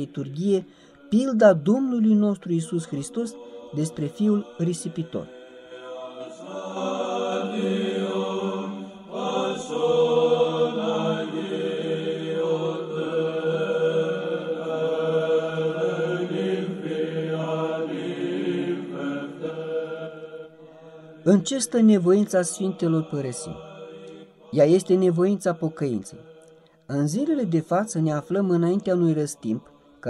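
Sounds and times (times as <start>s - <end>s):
low voices chanting: 2.6s - 26.7s.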